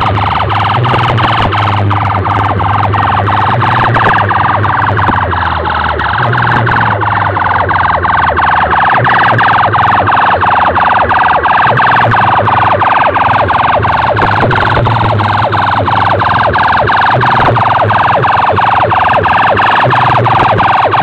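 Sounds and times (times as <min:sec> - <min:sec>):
loud electronic siren sweeps: 0:00.0 - 0:21.0
low steady drone: 0:00.0 - 0:21.0.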